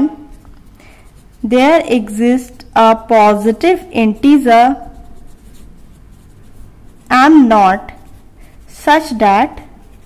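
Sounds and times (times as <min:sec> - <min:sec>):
pen scratching on paper: 0:00.0 - 0:10.0.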